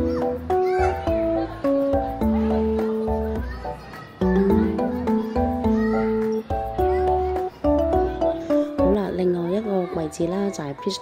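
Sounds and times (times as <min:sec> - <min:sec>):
light melody over steady bass: 0:00.0 - 0:09.3.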